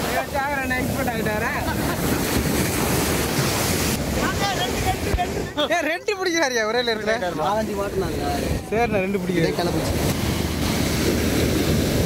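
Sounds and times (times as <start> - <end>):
sea surf on sandy beach: 0.0 - 12.0
wind buffeting microphone: 7.2 - 12.0.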